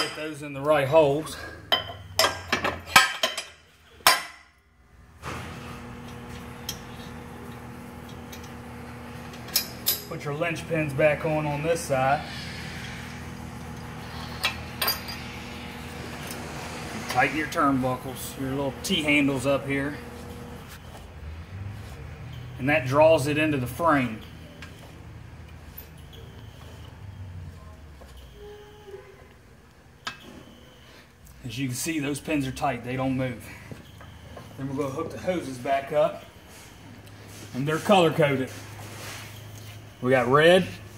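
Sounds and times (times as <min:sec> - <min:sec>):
steady low hum: 0:04.9 - 0:22.4.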